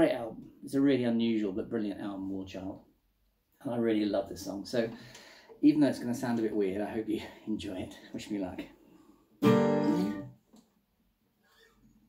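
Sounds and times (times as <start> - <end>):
acoustic guitar chord strummed: 9.4 - 10.3.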